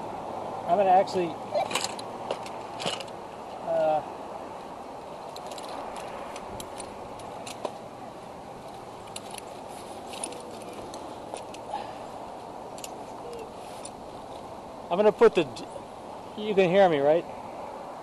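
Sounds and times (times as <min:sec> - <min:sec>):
steady background hiss: 0:00.0 - 0:18.0
gear clicking and rustling: 0:01.5 - 0:03.2, 0:05.0 - 0:07.9, 0:08.6 - 0:12.0, 0:12.7 - 0:14.5.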